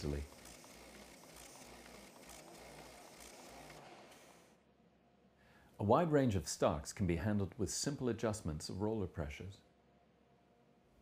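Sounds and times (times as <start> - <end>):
folding machine whirring: 0.0 - 4.6.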